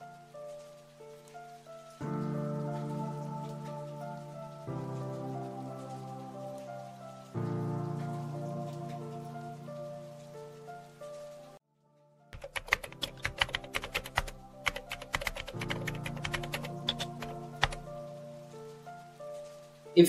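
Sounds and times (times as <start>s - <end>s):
soft background music: 0.0s - 20.0s
computer keyboard typing clicks: 12.4s - 17.9s.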